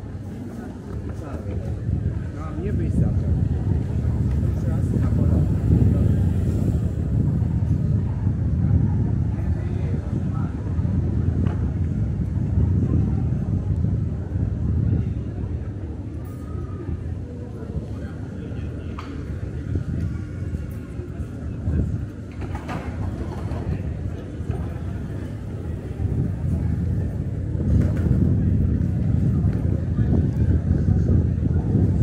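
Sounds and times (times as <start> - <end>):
passers-by talking: 0.0 - 32.0
wind buffeting microphone: 0.0 - 32.0.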